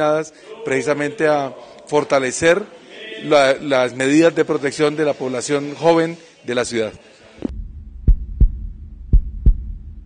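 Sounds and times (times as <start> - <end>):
heartbeat thumps: 7.4 - 10.0
steady low hum: 7.4 - 10.0.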